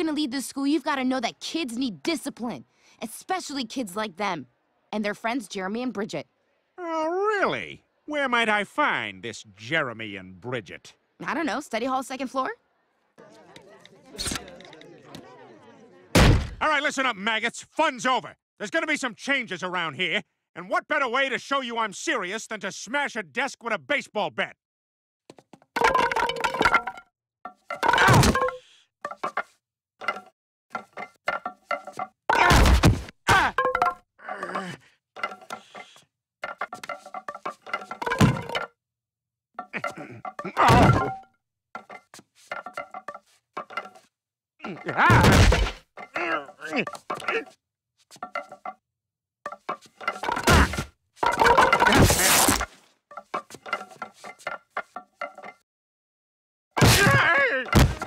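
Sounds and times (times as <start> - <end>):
wooden bats clattering on floor: 27.7 - 32.1, 35.2 - 38.7, 41.8 - 45.0, 45.6 - 47.5, 48.2 - 48.8, 49.5 - 55.6
man grunting in pain: 34.2 - 34.8, 46.2 - 47.5.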